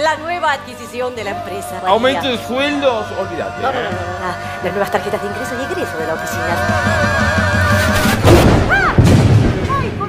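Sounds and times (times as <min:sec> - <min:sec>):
thunder crash: 0:07.9 - 0:10.0.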